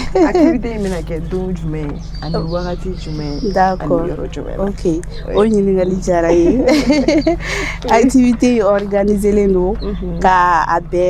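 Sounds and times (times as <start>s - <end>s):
bird chirp: 0.0s - 11.0s
woman speaking: 0.0s - 11.0s.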